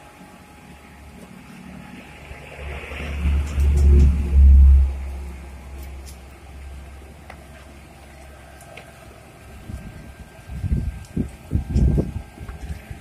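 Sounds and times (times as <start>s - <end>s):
van engine revving: 1.6s - 7.2s.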